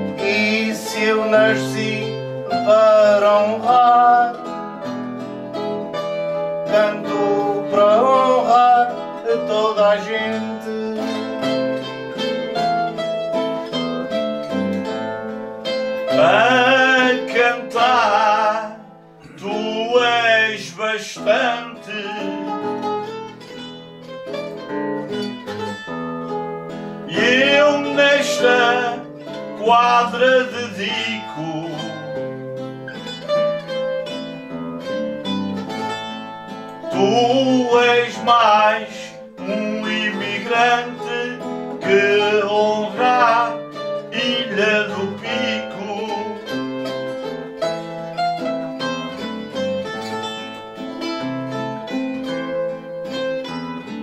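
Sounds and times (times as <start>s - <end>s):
man singing: 0.0s - 4.6s, 6.6s - 11.9s, 16.1s - 22.8s, 27.1s - 32.4s, 36.8s - 47.0s
plucked guitars: 0.0s - 54.0s.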